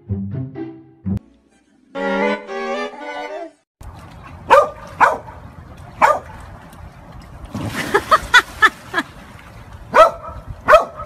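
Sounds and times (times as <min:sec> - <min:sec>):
large dog barking: 0:04.5 - 0:05.4, 0:06.0 - 0:06.4, 0:09.9 - 0:11.0.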